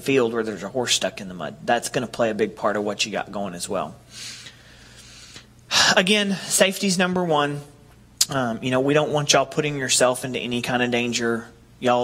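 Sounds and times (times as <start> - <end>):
man speaking: 0.0 - 4.0, 5.7 - 12.0
man breathing: 4.1 - 6.5
sharp intake of breath: 4.1 - 6.5.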